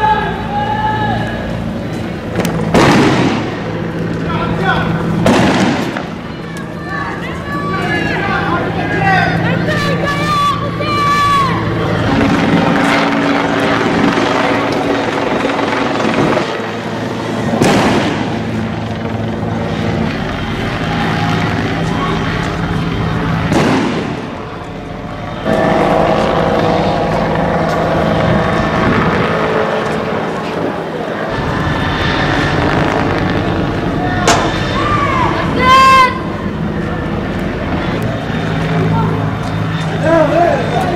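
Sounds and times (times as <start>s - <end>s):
people shouting: 0.0s - 1.6s, 6.0s - 12.1s, 33.9s - 36.4s
motor vehicle engines: 0.0s - 40.9s.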